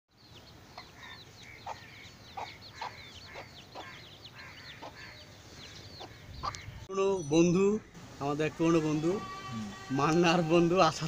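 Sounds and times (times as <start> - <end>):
chicks peeping: 0.2 - 6.9
hen clucking: 0.7 - 6.9.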